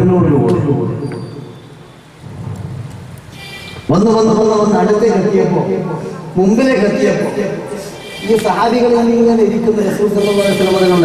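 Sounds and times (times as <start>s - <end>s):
man speaking amplified: 0.0s - 1.0s, 3.9s - 11.0s
low rumbling noise: 0.0s - 11.0s.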